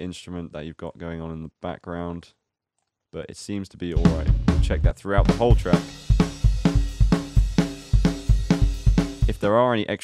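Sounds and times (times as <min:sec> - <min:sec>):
rock drum kit playing: 0:04.0 - 0:09.6.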